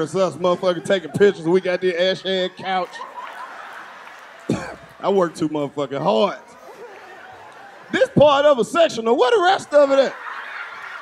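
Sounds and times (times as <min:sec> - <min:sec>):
person coughing: 0:04.5 - 0:04.9.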